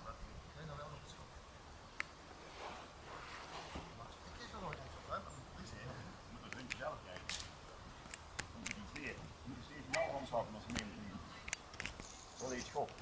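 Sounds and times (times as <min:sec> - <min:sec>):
light clicks: 0:06.5 - 0:09.1.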